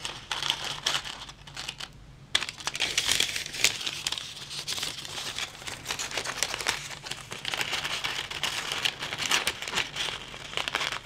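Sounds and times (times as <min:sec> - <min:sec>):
baking paper crinkling: 0:00.0 - 0:11.0.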